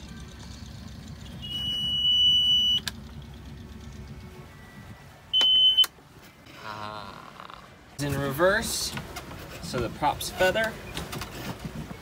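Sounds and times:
boat engine rumble: 0.0 - 12.0.

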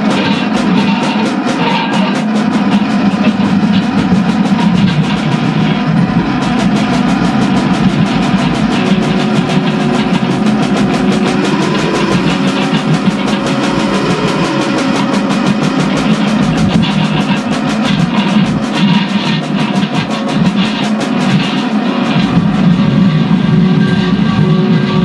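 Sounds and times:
drums fast beat: 0.0 - 25.0
electric guitars: 0.0 - 25.0.

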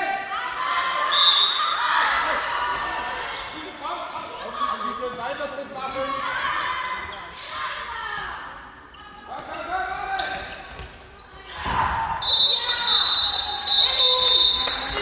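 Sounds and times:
players shouting in echoing hall: 0.0 - 15.0
ball bouncing on hall floor: 10.2 - 12.0.

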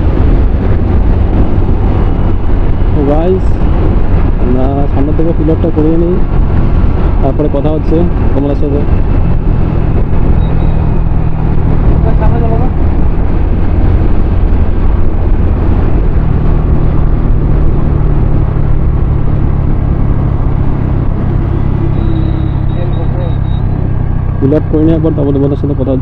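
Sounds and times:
wind rushing over microphone: 0.0 - 26.0.

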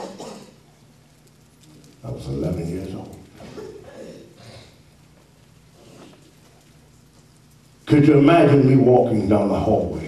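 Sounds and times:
man's word echoing in hall: 7.9 - 10.0.

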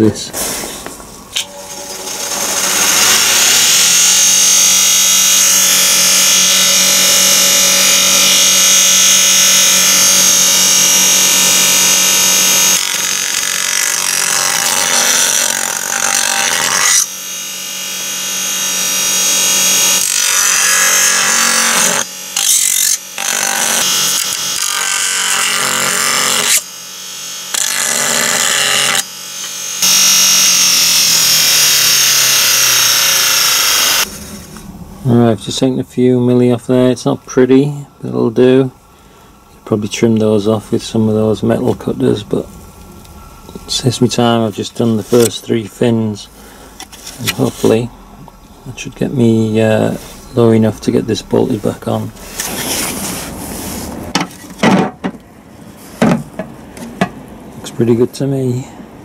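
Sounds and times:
bench grinder motor hum: 1.4 - 34.2
grinding metal on wheel: 1.4 - 34.2.

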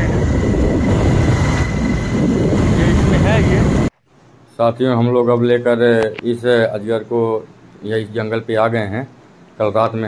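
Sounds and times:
road noise: 0.0 - 3.9
wind buffeting microphone: 0.0 - 3.9.

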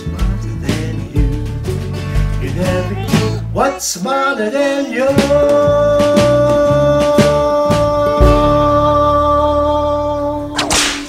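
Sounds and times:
whip-crack sound effect: 10.6 - 11.0.

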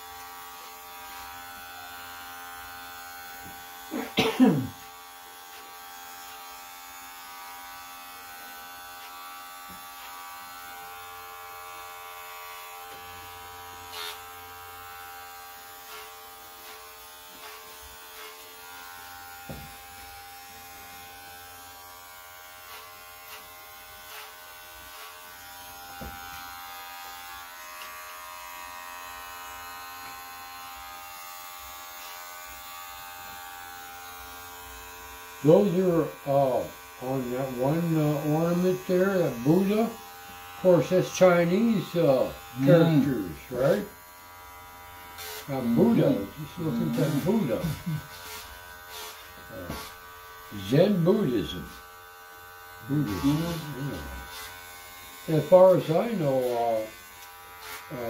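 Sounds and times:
electric hair clippers buzzing: 0.0 - 58.0.

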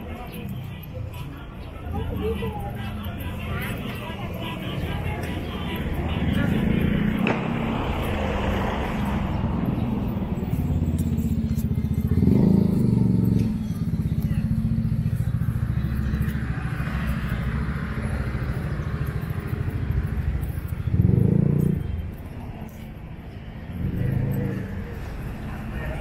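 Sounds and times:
car engines passing: 0.0 - 26.0
motorcycle passing: 0.0 - 26.0.

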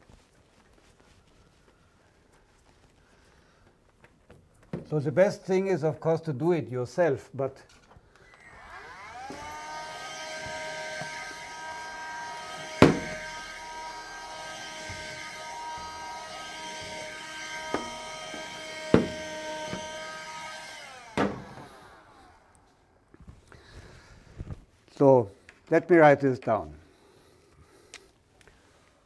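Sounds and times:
small electric motor humming: 8.2 - 22.7
sharp knocks: 12.8 - 13.3, 18.8 - 19.9.

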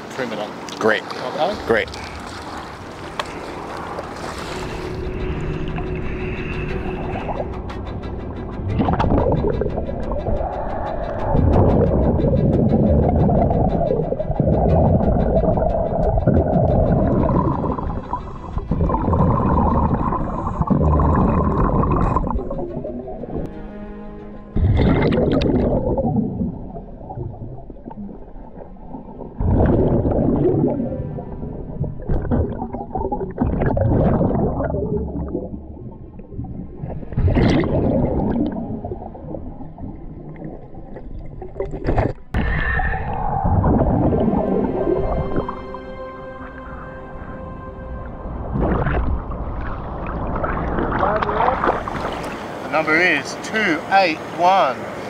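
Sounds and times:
diver breathing through regulator: 3.1 - 8.0
exhaled bubbles rushing: 8.5 - 23.5, 24.6 - 45.7, 48.2 - 52.6.

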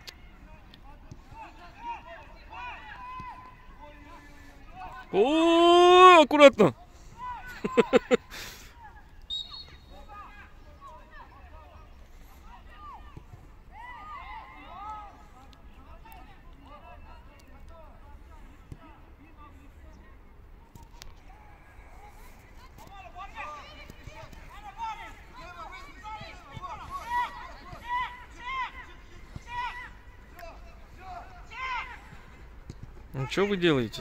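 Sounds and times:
distant footballers shouting: 0.1 - 34.0.

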